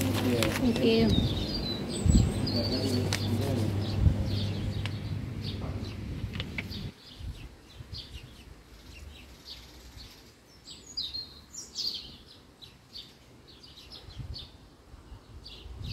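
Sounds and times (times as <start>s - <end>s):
small birds chirping: 0.0s - 15.9s
low rumble: 1.0s - 6.9s.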